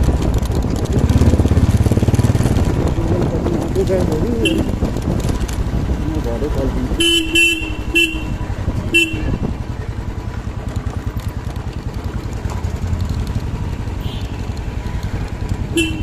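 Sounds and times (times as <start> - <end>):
motorcycle engine running: 0.0 - 16.0
vehicle horn beeps: 4.4 - 4.8, 7.0 - 9.5, 14.0 - 14.4, 15.7 - 16.0.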